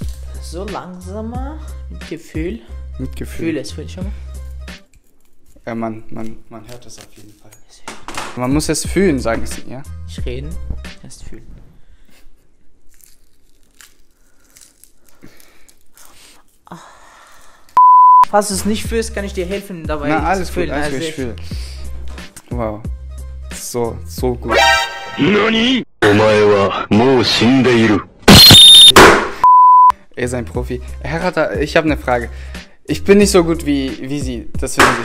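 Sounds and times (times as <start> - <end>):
faint crackling and rustling: 4.9 - 7.8
test-tone beep: 17.8 - 18.3, 28.3 - 29.9
clipped noise burst with whistle: 28.3 - 29.0.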